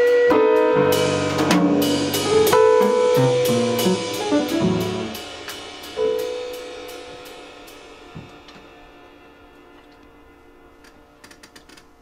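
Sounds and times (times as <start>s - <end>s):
upright piano notes ringing: 0.3s - 9.1s.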